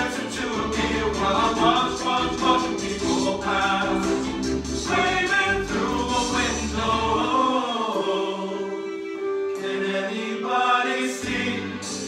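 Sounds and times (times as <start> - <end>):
musical accompaniment: 0.0 - 12.0
vocal ensemble singing harmonies: 0.0 - 12.0.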